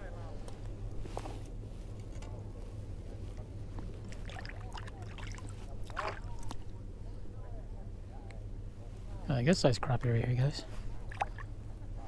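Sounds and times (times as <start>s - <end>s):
steady low hum: 0.0s - 12.0s
water lapping and sloshing: 3.9s - 6.8s, 10.8s - 12.0s.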